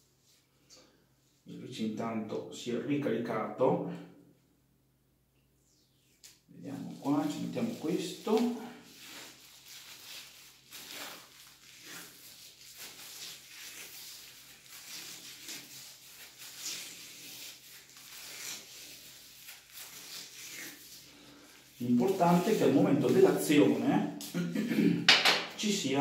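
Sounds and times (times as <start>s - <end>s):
plastic bag crinkling: 6.7s - 24.3s.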